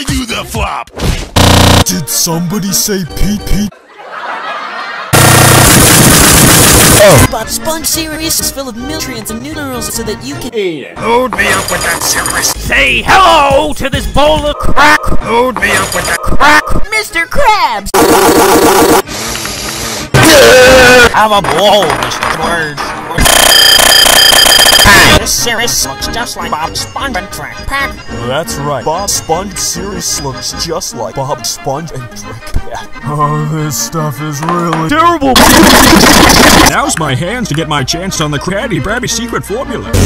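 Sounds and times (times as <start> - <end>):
pulsing high-pitched electronic alarm: 1.4 - 1.8, 23.2 - 25.2
loud distorted noise blast: 5.2 - 7.3, 23.2 - 25.2, 35.4 - 36.8.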